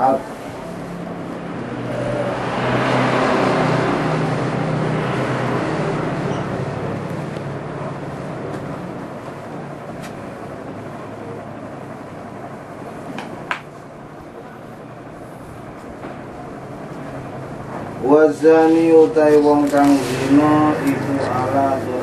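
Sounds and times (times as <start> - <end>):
vehicle passing by: 0.0 - 13.1, 14.1 - 22.0
steady low hum: 0.0 - 22.0.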